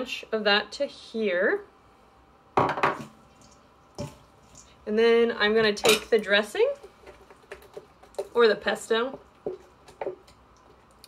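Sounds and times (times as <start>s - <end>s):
kitchenware clattering: 5.6s - 6.3s.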